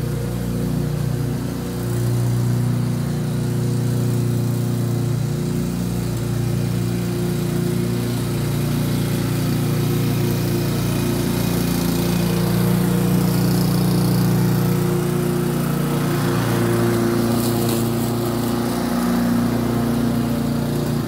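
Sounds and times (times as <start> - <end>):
lawnmower engine running: 0.0 - 21.0.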